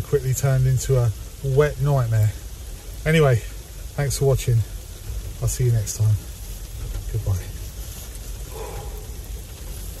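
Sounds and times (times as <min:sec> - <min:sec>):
steady rain falling: 0:00.0 - 0:10.0
low rumble: 0:05.2 - 0:10.0.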